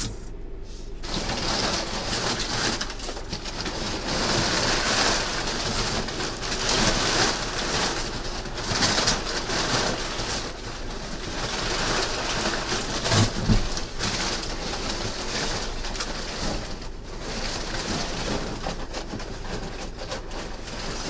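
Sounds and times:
cardboard scraping and rustling: 0.0 - 21.0.

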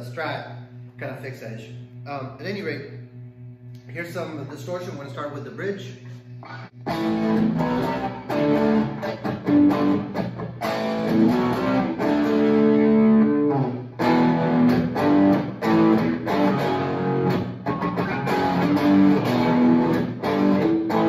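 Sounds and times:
distorted electric guitar: 6.4 - 21.0.

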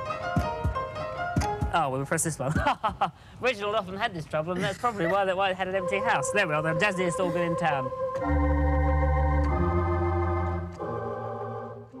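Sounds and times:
pipe organ playing sustained chords: 5.5 - 12.0.

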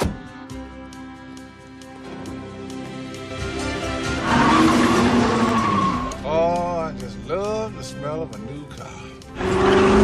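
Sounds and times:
orchestral film music: 0.0 - 10.0
car engine revving: 3.6 - 6.3, 9.3 - 10.0
tyre squeal: 4.2 - 6.2.

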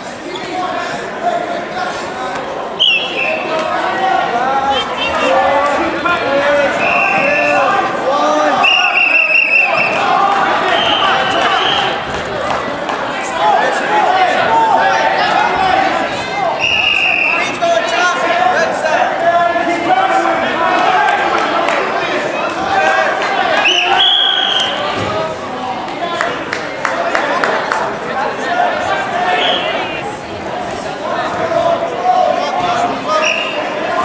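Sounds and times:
spectators and coaches shouting: 0.0 - 34.0
referee's whistle blasts: 2.8 - 3.5, 6.8 - 7.5, 8.6 - 10.0, 16.6 - 17.4, 23.6 - 24.8, 33.2 - 33.6.

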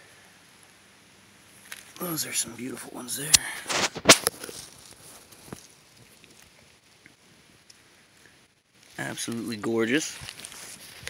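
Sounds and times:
sharp crack: 3.2 - 4.7.

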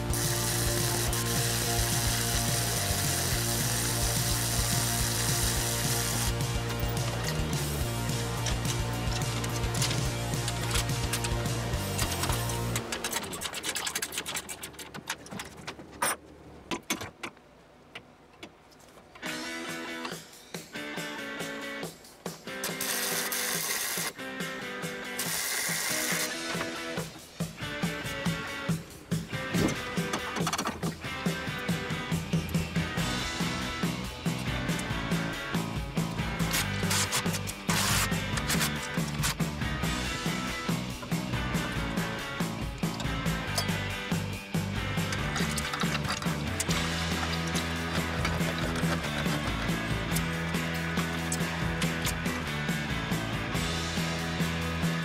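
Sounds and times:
background music: 0.0 - 14.1, 19.2 - 55.0
welder crackling: 0.0 - 14.2, 22.6 - 24.2, 25.2 - 26.6, 36.2 - 43.6, 44.9 - 52.9.

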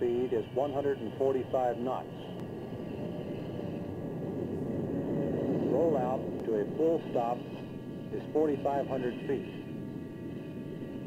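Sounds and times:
jet engines rushing: 0.0 - 11.0.

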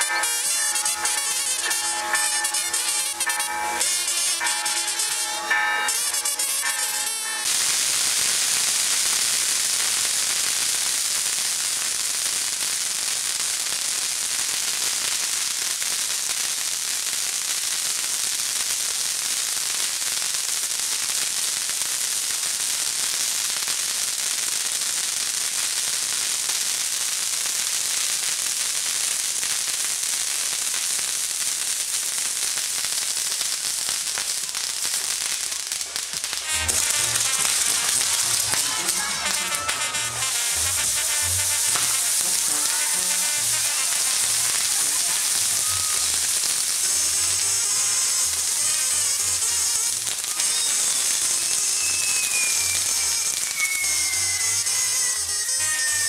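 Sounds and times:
music: 0.0 - 7.5, 36.4 - 56.0
fireworks hissing and crackling: 0.0 - 56.0.

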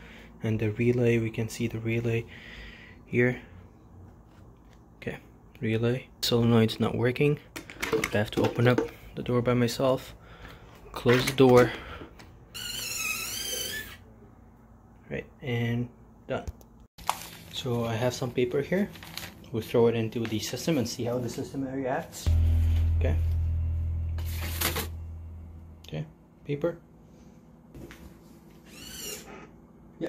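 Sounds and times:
door squeaking: 12.5 - 14.0, 28.7 - 29.3
newspaper rustling into plastic bin: 17.0 - 17.8, 18.7 - 19.5
low steady hum: 22.2 - 28.4.

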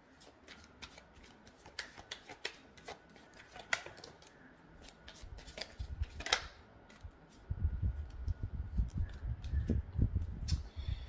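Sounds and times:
cards being shuffled by hand: 0.1 - 7.4.

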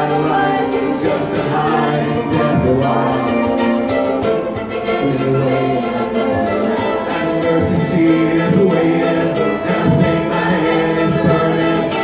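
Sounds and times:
acoustic guitar: 0.0 - 12.0
banjo: 0.0 - 12.0
voices singing together: 0.0 - 12.0.

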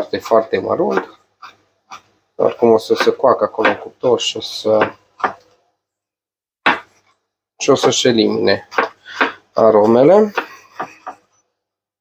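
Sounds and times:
knife knocking on cutting board: 6.7 - 7.0.

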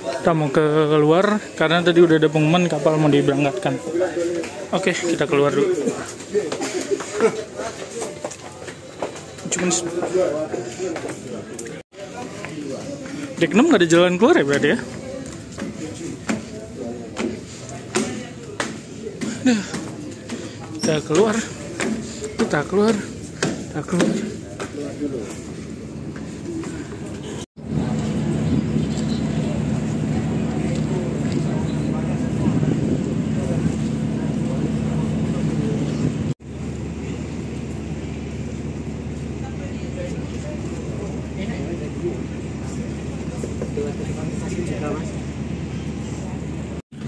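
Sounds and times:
people talking: 0.0 - 46.8.

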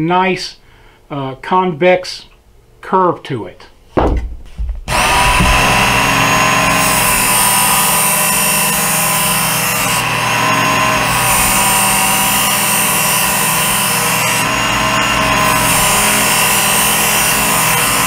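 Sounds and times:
belt sharpener grinding knife: 4.9 - 18.0.

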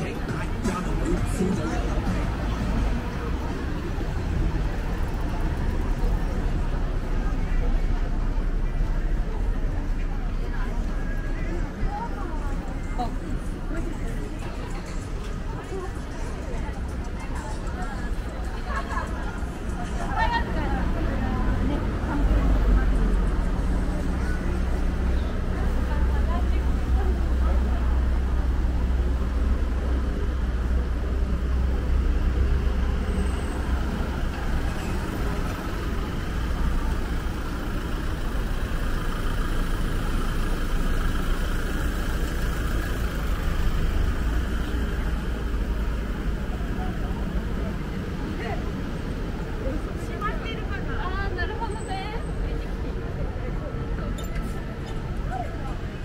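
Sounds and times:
passers-by talking: 0.0 - 56.0
road traffic rumble: 0.0 - 56.0.

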